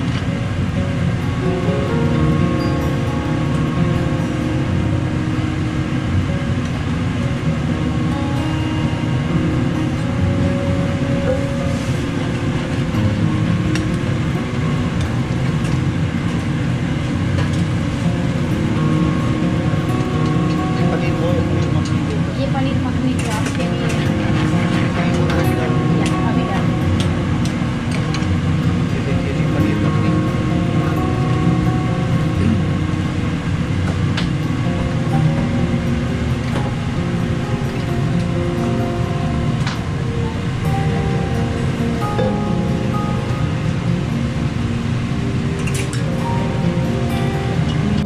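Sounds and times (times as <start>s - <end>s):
music playing: 0.0s - 48.0s.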